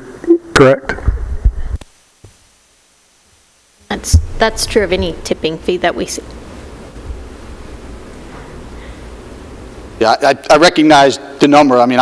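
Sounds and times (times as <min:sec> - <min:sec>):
microphone handling thumps: 0:00.9 - 0:02.4, 0:04.0 - 0:05.4
microphone click: 0:04.0 - 0:05.1.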